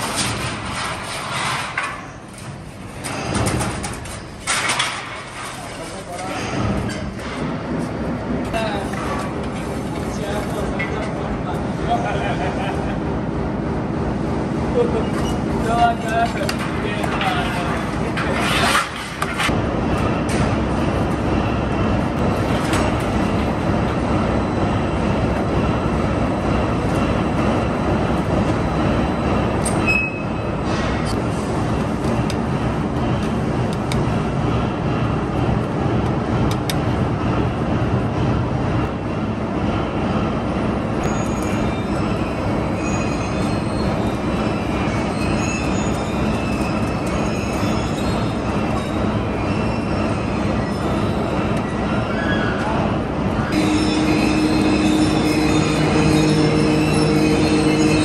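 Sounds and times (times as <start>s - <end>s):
steel slitting machine running: 0.0s - 52.2s, 53.0s - 58.0s
faint short high squeaks: 29.8s - 30.5s, 41.1s - 51.3s, 53.6s - 58.0s.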